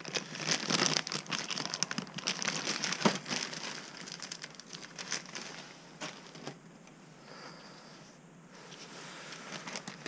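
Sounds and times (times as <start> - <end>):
plastic bag crinkling: 0.0 - 6.6, 9.5 - 10.0.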